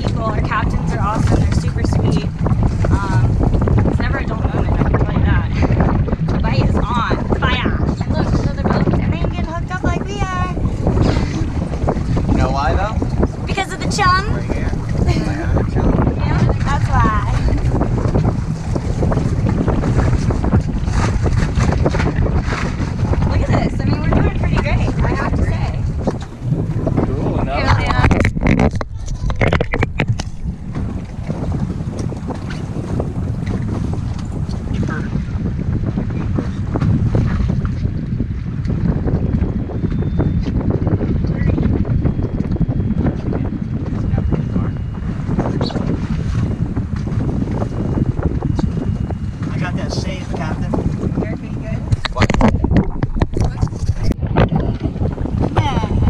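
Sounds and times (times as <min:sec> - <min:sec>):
steady low rumble: 0:00.0 - 0:56.0
wind buffeting microphone: 0:00.0 - 0:56.0
indistinct voices: 0:23.2 - 0:29.8.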